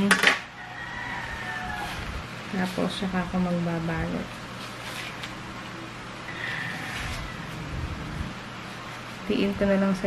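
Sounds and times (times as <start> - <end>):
faint high hum: 0.4 - 10.0.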